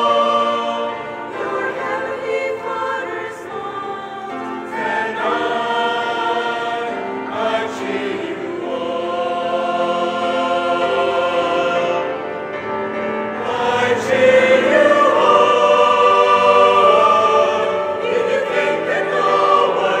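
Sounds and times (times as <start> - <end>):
church choir singing in parts: 0.0 - 20.0.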